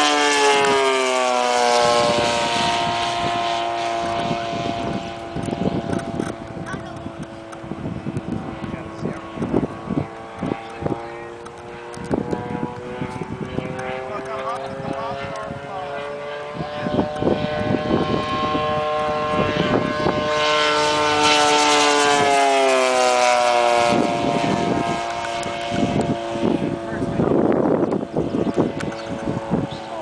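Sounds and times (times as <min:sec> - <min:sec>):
model plane engine flying by: 0:00.0 - 0:30.0.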